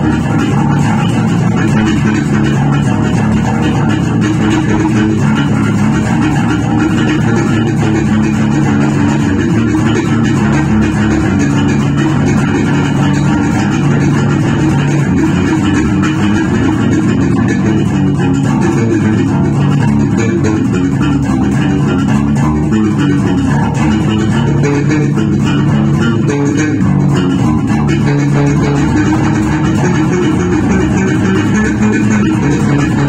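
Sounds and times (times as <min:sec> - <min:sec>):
electric bass guitar plucked: 0:00.0 - 0:33.0.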